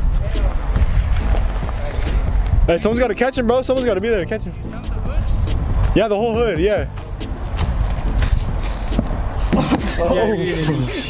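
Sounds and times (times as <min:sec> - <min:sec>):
man's voice: 0:09.9 - 0:11.0.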